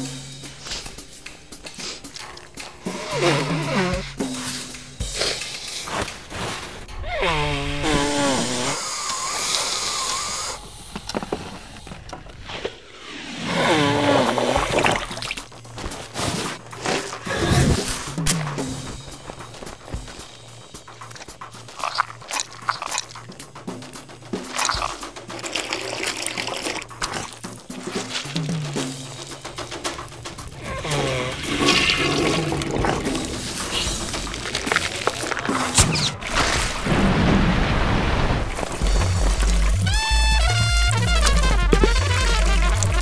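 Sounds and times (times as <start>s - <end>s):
rushing gushing noise: 13.3s - 43.0s
wet liquid sound effects: 13.5s - 43.0s
cartoon music: 38.8s - 43.0s.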